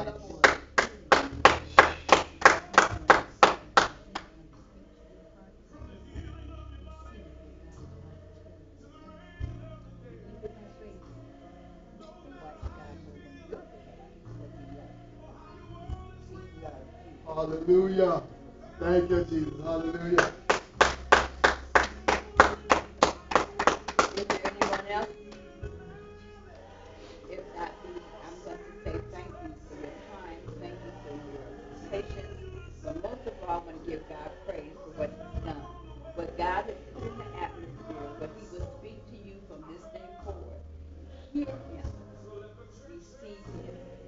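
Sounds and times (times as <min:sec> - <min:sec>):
hands clapping: 0:00.4 - 0:04.4, 0:20.2 - 0:25.6.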